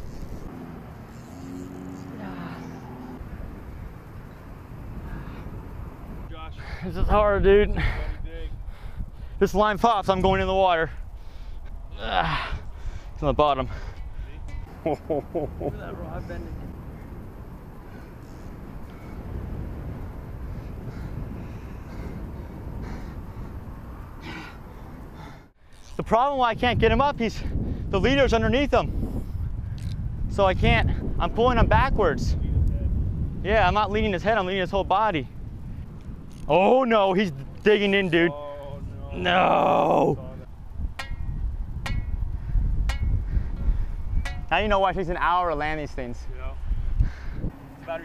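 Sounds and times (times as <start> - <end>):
wind rumbling on microphone: 0.0 - 48.0.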